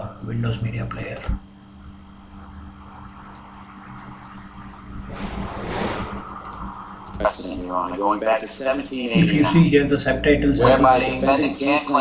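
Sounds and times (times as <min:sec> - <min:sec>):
faint steady hum: 0:00.0 - 0:12.0
computer mouse clicks: 0:00.9 - 0:01.4, 0:06.4 - 0:07.2
voices: 0:06.3 - 0:12.0.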